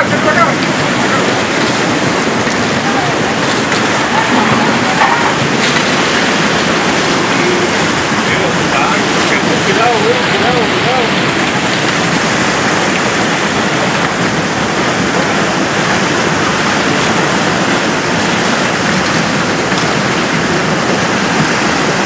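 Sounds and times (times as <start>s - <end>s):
mudflow rushing water: 0.0s - 22.0s.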